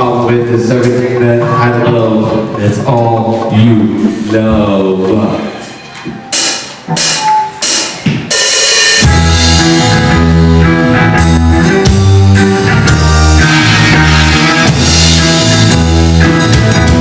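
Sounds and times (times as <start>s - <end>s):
drum and cymbal hits: 6.2s - 10.2s, 11.2s - 17.0s
rock band playing heavy groove: 6.3s - 17.0s.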